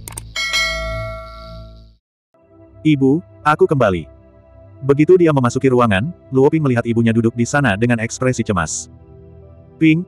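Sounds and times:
bright bell chime: 0.4 - 1.9.

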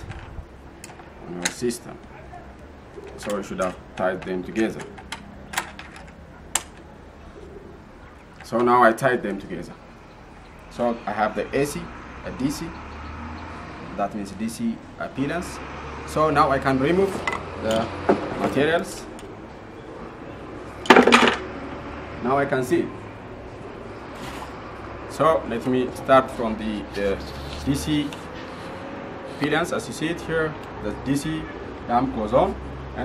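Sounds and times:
low background noise: 0.0 - 33.0
sharp click of cable connection: 6.5 - 6.8.

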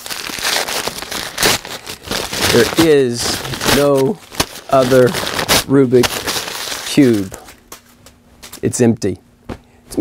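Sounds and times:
paper bag crumpled and torn: 0.0 - 7.5.

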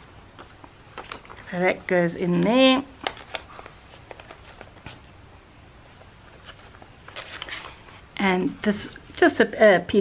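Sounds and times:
page turning: 0.4 - 2.4, 3.0 - 5.1, 6.0 - 7.9
paper rustling: 0.4 - 2.4, 3.0 - 5.1, 5.9 - 8.0.

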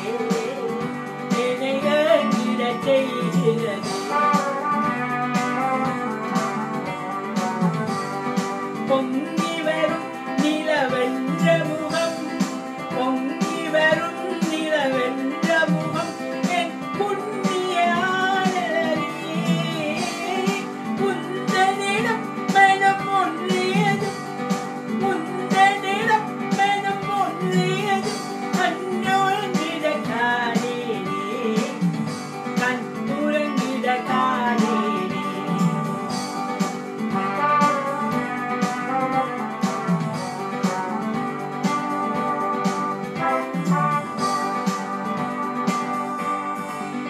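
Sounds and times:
woman singing: 0.0 - 45.2
electronic keyboard with rhythm beat: 0.0 - 47.0.

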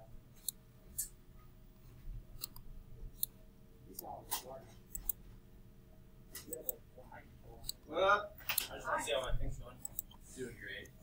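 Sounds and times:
faint room noise: 0.0 - 11.0
computer mouse clicks: 2.4 - 3.4, 4.9 - 5.2, 8.5 - 10.2.

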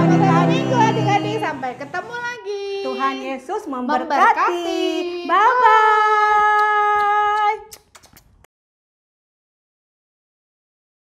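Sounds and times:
woman singing long note: 0.0 - 1.6.

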